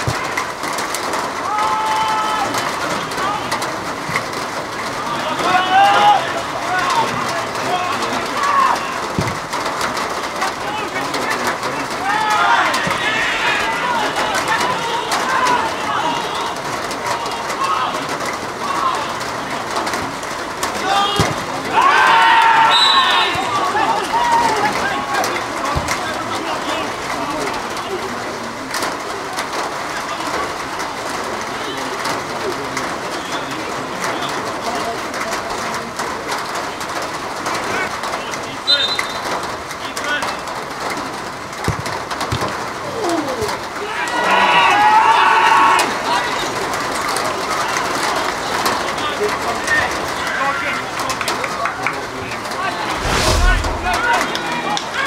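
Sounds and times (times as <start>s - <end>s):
players shouting: 0.0s - 27.2s, 43.0s - 51.1s.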